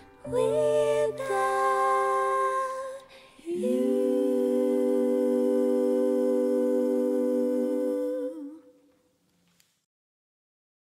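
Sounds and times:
vocal group singing in harmony: 0.0 - 9.0.

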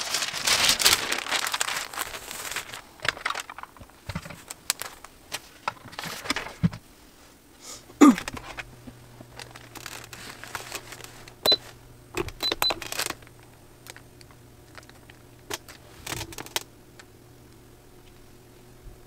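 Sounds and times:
paper and fabric rustling: 0.0 - 6.7, 9.3 - 11.8.

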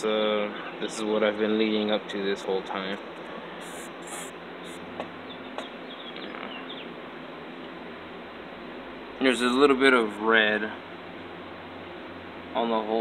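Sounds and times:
steady background hiss: 0.0 - 13.0.

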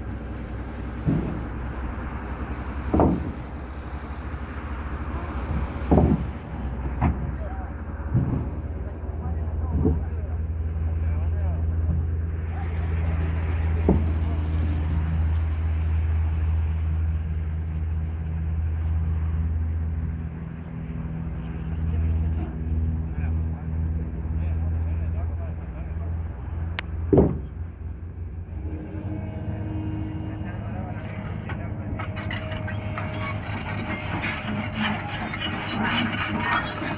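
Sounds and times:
excavator diesel engine running: 0.0 - 36.9.

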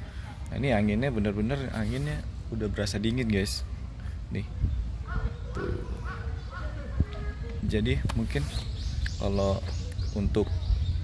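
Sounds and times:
wind buffeting microphone: 3.7 - 11.0.

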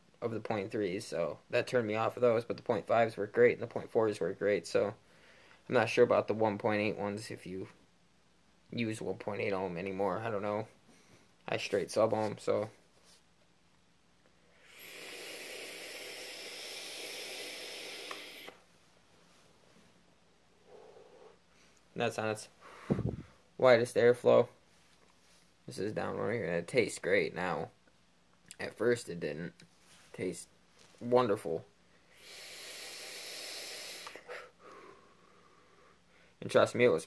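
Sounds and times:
sizzling vape coil: 14.6 - 18.6, 32.1 - 34.4
airy hiss of vape draw: 14.6 - 18.7, 32.1 - 34.6.

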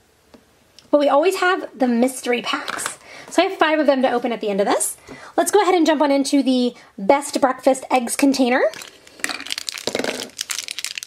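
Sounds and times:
plastic wrapper crackling: 8.7 - 11.0.

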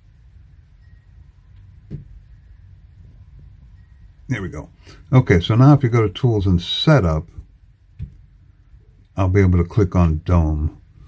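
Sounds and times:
low steady hum: 0.0 - 11.0
soft thump: 1.8 - 2.2, 8.0 - 8.2.

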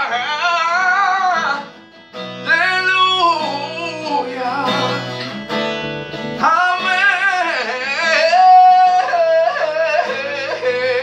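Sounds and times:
man singing a hymn: 0.0 - 1.7, 2.4 - 5.1, 6.4 - 11.0
acoustic guitar: 0.0 - 11.0.

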